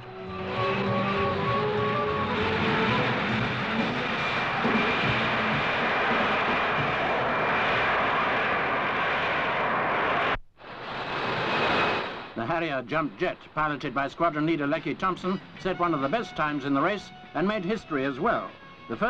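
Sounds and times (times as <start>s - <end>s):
jet engine roar with whine: 0.0s - 12.4s.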